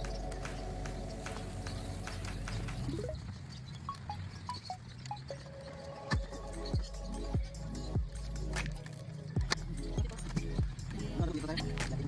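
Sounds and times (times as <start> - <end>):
background music with chimes: 0.0 - 12.0.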